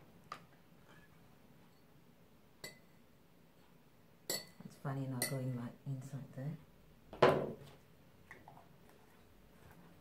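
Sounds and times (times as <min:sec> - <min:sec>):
glassware clinking: 0:02.6 - 0:02.9, 0:04.3 - 0:04.6.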